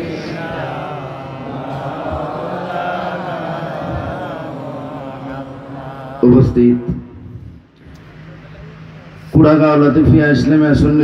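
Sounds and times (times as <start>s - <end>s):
men chanting devotional melody: 0.0s - 7.8s.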